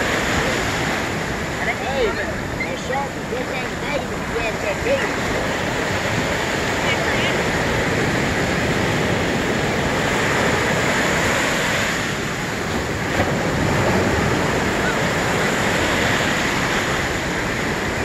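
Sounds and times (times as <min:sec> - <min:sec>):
ocean surf breaking: 0:00.0 - 0:18.0
wind on microphone: 0:00.0 - 0:18.0.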